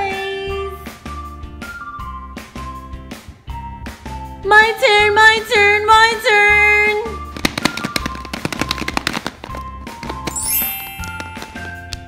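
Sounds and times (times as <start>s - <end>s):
background music: 0.0s - 12.0s
plastic egg rattling: 7.2s - 12.0s.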